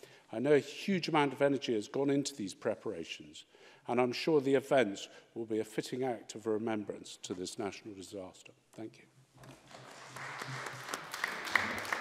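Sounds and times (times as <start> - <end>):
audience applause: 9.7 - 12.0.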